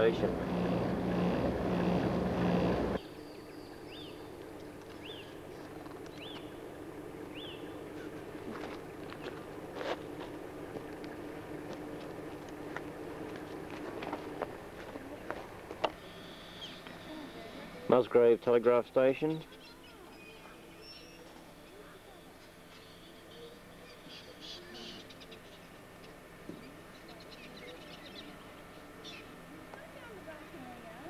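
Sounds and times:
loud steady rumble: 0.0 - 17.9
bird chirping: 7.3 - 7.8.

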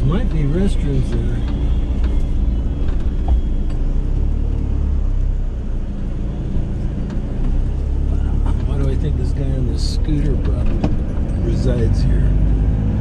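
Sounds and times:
van engine and tyres rumbling: 0.0 - 13.0.

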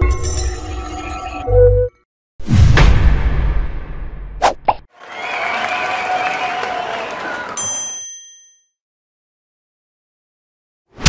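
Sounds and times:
deep boom: 2.4 - 4.4.

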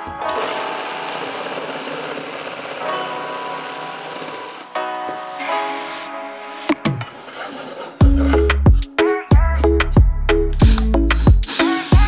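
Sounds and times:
power tool running: 0.2 - 4.8.

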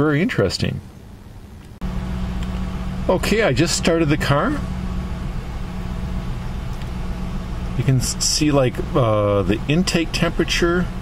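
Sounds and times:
car engine idling: 0.9 - 11.0.

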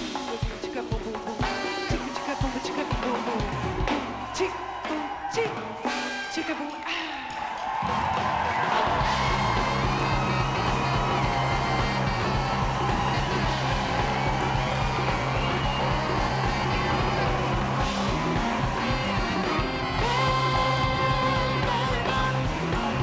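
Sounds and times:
saxophone: 0.0 - 4.1, 5.8 - 7.0, 9.0 - 23.0
drum kit: 0.0 - 6.8, 7.4 - 23.0
congas: 0.0 - 23.0
trumpet: 1.4 - 6.9, 8.6 - 22.9
repeating bass line: 9.0 - 23.0.

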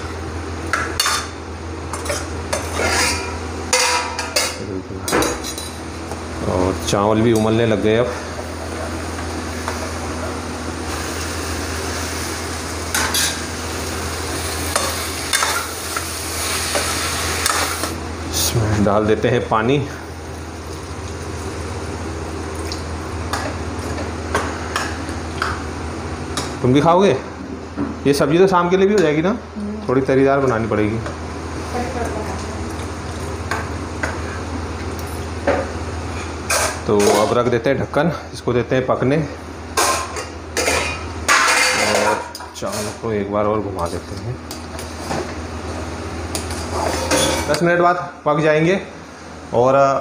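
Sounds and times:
steady frying hiss: 0.0 - 50.0
steady low hum: 0.0 - 50.0
metal spatula scraping a pan: 2.6 - 4.0.

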